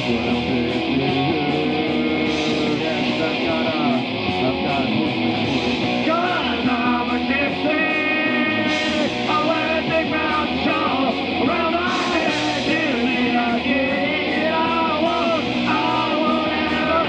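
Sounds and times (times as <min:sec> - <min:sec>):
live rock band playing: 0:00.0 - 0:17.0
person singing: 0:00.0 - 0:17.0.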